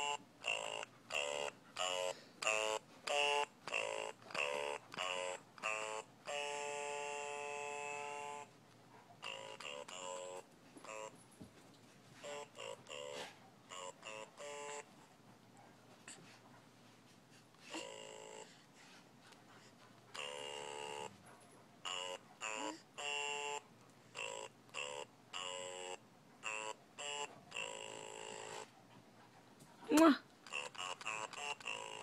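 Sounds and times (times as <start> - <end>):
electronic toy music: 0.0 - 8.6, 9.2 - 11.2, 12.2 - 14.9, 17.8 - 18.6, 20.2 - 21.1, 21.8 - 28.7, 30.4 - 32.0.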